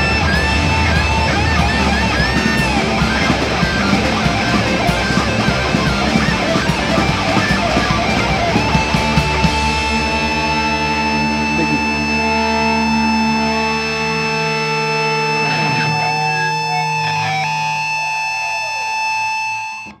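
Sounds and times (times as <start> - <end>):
distorted guitar feedback drone: 0.0 - 20.0.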